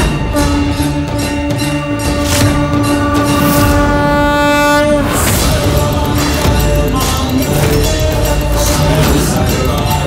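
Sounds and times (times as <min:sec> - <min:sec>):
held horn-like note: 0:00.0 - 0:06.9
dramatic background score: 0:00.0 - 0:10.0.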